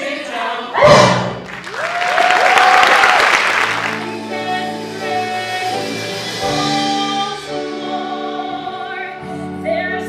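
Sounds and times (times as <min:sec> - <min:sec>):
musical theatre accompaniment chords: 0:00.0 - 0:10.0.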